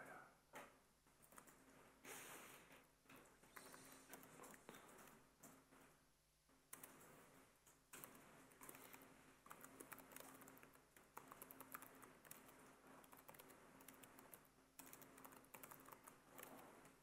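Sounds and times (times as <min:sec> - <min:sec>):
keyboard typing: 0:01.1 - 0:01.8, 0:03.1 - 0:05.9, 0:06.6 - 0:17.0.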